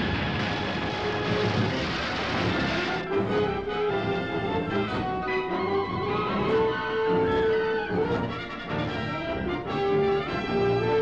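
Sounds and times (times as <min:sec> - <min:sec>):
truck crash rushing roar: 0:00.0 - 0:03.7
faint orchestral music: 0:00.1 - 0:11.0.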